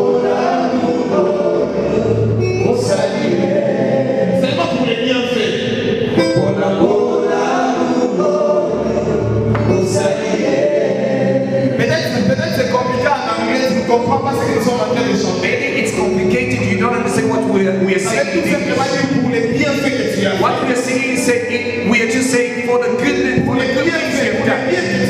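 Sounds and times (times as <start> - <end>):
held chords: 0.0 - 25.0
deep bass notes: 1.1 - 25.0
man singing into microphone: 6.2 - 8.4, 9.6 - 10.7.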